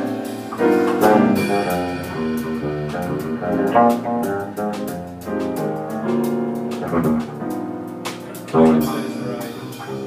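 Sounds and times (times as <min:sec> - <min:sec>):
electric bass: 0:00.0 - 0:10.0
grand piano: 0:00.0 - 0:10.0.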